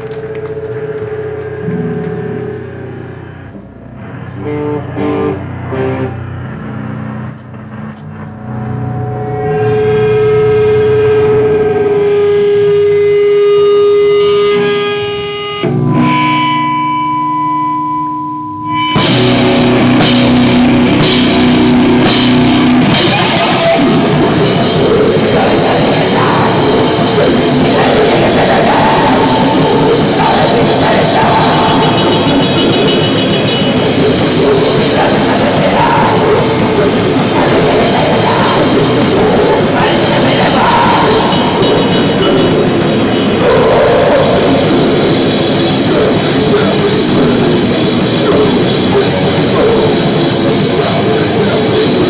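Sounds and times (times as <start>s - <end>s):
grindcore band playing live: 0.0s - 17.4s, 18.7s - 52.0s
distorted electric guitar droning: 0.0s - 52.0s.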